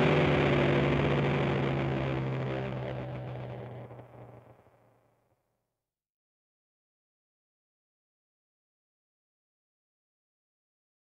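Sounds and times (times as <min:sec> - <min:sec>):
sustained electric guitar chord: 0:00.0 - 0:04.7.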